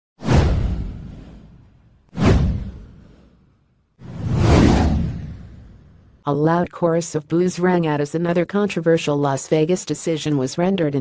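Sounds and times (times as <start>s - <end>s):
whoosh sound effects: 0.2s - 6.1s.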